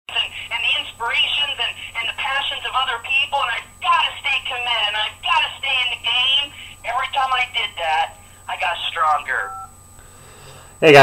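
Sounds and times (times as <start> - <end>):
tinny voice over telephone: 0.1 - 9.7.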